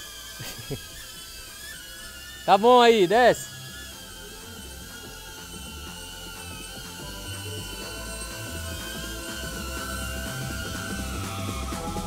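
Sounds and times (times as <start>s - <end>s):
drone propellers whining: 0.0s - 12.0s
background music with bass line: 3.8s - 12.0s.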